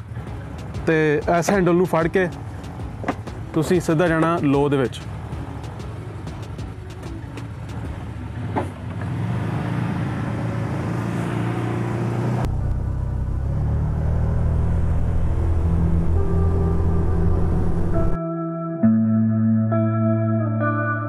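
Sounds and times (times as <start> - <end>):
vehicle engine accelerating: 4.1 - 18.2.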